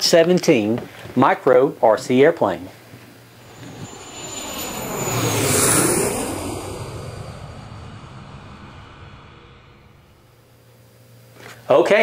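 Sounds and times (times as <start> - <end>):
airplane flying past: 3.3 - 10.9.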